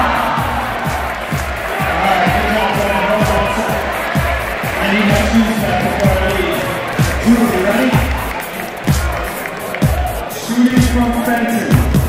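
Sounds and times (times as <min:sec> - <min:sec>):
crowd chatter: 0:00.0 - 0:12.0
music with bass beat: 0:00.0 - 0:12.0.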